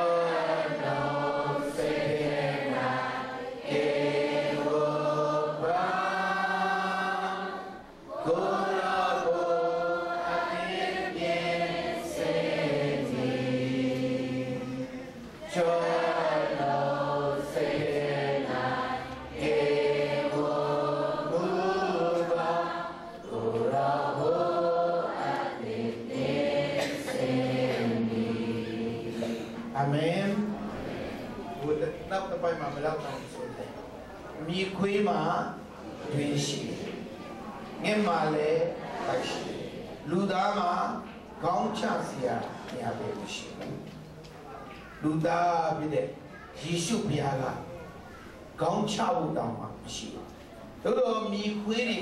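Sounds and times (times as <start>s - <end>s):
man leading hymn on microphone: 0.0s - 7.4s, 8.1s - 11.6s, 14.2s - 18.6s, 20.3s - 25.7s, 27.2s - 33.8s, 34.4s - 37.0s, 37.8s - 43.9s, 45.0s - 47.8s, 48.6s - 52.0s
congregation singing a hymn: 0.0s - 44.2s.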